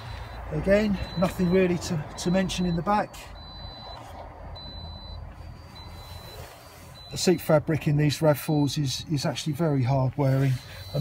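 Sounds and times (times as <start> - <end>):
high-pitched electronic beeps: 0.0 - 7.6, 10.3 - 11.0.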